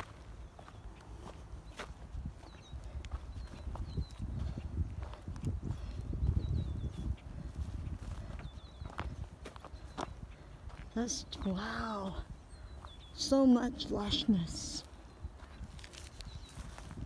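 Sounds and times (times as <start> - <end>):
footsteps through grass: 0.0 - 17.0
small bird chirping: 0.0 - 17.0.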